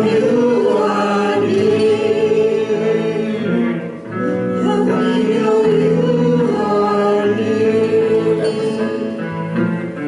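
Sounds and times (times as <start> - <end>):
group singing in harmony: 0.0 - 9.7.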